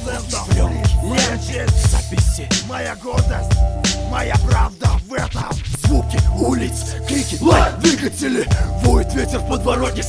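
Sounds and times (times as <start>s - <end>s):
hip-hop beat with heavy kick drum: 0.0s - 10.0s
person rapping: 0.0s - 10.0s.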